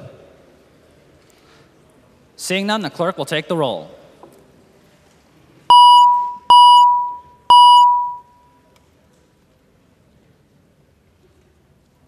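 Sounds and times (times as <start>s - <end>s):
electronic signal tone: 5.7s - 8.3s.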